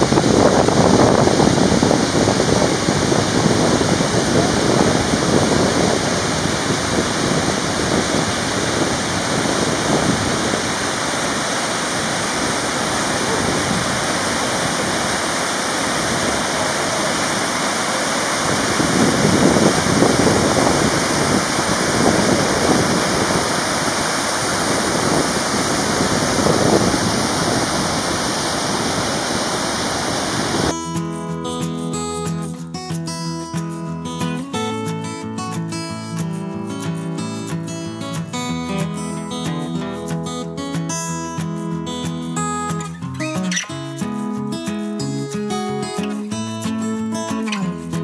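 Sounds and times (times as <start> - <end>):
strummed acoustic guitar music: 0.0 - 28.8, 30.5 - 48.0
river rushing over boulders: 0.0 - 30.9.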